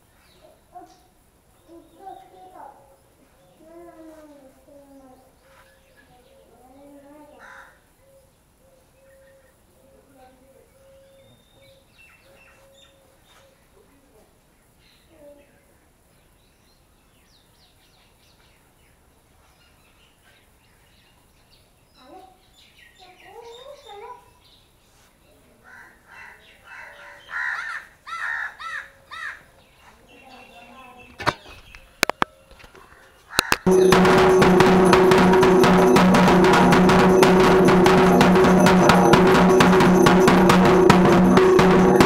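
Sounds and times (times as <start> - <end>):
faint bird chirps: 0.1 - 16.6, 19.4 - 27.6
sharp knock: 33.4 - 42.0.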